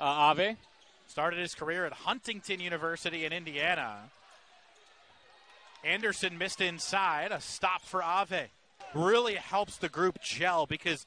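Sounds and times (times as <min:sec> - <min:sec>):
man commentating: 0:00.0 - 0:04.1, 0:05.8 - 0:11.0
crowd and court noise: 0:00.0 - 0:11.0.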